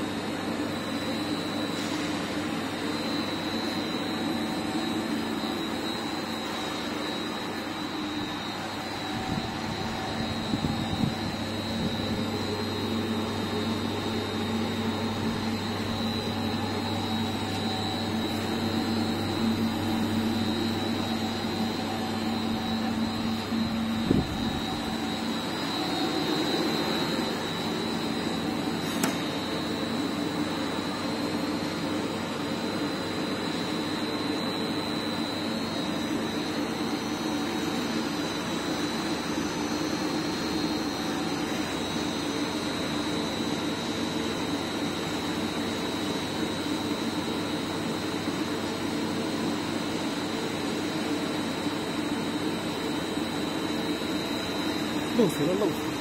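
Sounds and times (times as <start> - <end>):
thin high whine: 0.0 - 46.8
machine running steadily: 0.0 - 56.0.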